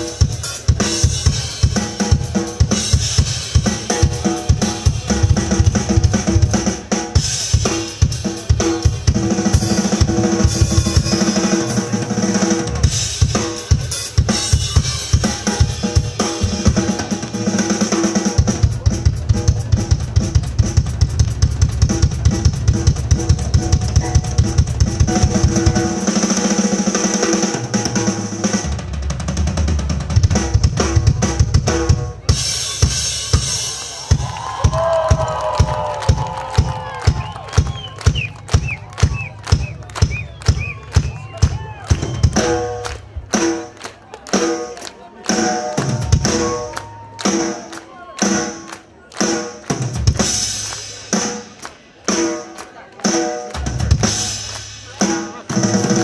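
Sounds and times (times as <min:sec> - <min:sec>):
drum kit solo: 0:00.0 - 0:56.0
crowd shouting and whistling: 0:32.7 - 0:49.1
crowd clapping: 0:33.2 - 0:56.0.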